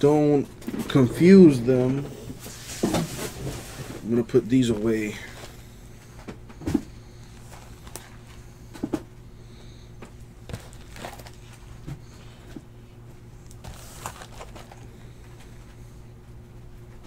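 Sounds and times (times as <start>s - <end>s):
steady low hum: 0.0s - 17.0s
cardboard boxes knocking and rustling: 10.4s - 12.6s.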